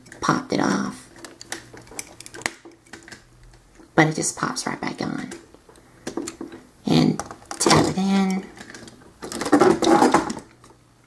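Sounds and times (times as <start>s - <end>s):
toy figure parts clicking: 1.2s - 3.2s.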